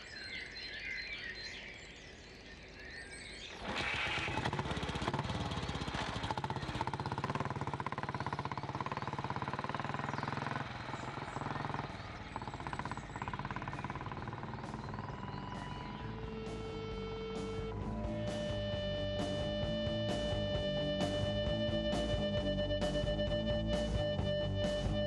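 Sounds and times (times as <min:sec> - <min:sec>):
motorcycle engine running: 0:03.6 - 0:25.0.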